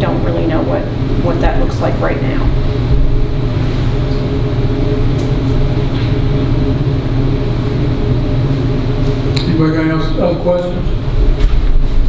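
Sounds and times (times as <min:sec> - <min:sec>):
low ventilation hum: 0:00.0 - 0:12.0.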